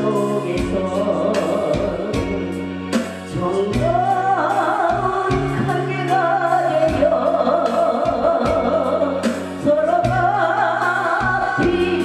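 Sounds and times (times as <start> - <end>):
backing music with bass: 0.0 - 12.0
regular drumbeat: 0.0 - 12.0
woman singing into a microphone: 0.0 - 12.0.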